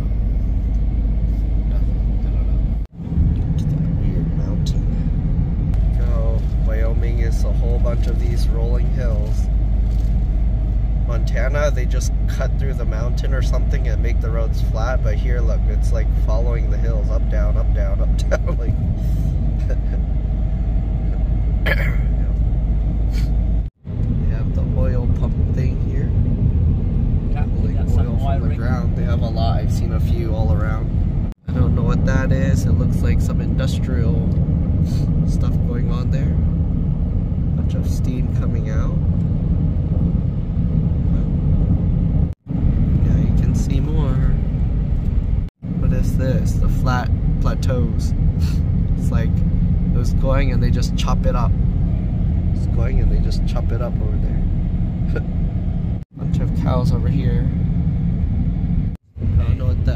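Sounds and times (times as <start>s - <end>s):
road and tyre noise in car: 0.0s - 59.9s.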